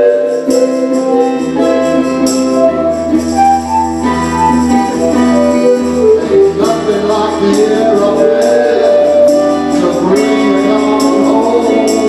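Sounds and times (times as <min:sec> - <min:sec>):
live band playing: 0:00.0 - 0:12.0
tambourine: 0:00.0 - 0:12.0.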